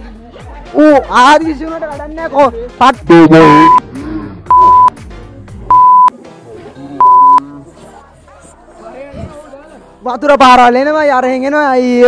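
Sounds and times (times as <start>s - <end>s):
censor bleeps: 3.4s - 3.8s, 4.5s - 4.9s, 5.7s - 6.1s, 7.0s - 7.4s.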